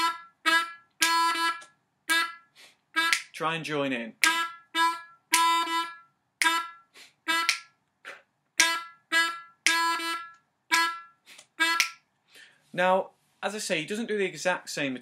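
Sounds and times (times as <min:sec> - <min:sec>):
harmonica staccato notes: 0:00.0 - 0:03.6, 0:04.2 - 0:12.1.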